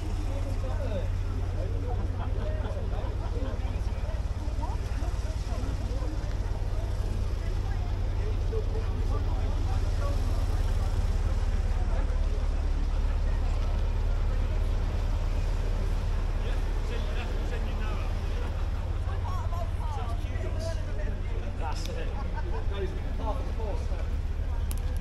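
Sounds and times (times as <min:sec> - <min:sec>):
faint voices talking: 0:00.0 - 0:25.0
steady low rumble: 0:00.0 - 0:25.0.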